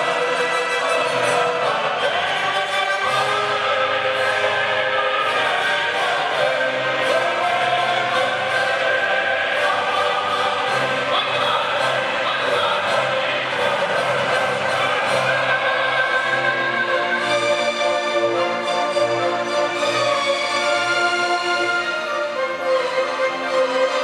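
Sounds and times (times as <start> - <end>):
orchestra and choir: 0.0 - 24.0.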